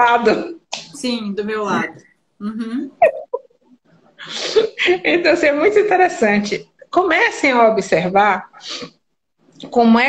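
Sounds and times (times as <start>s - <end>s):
woman laughing: 2.4s - 3.5s.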